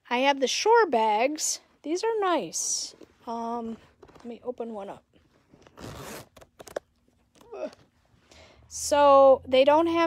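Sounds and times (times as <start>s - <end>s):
pouch clicks and rustles: 5.5s - 6.9s
zipper rasp: 5.6s - 6.8s.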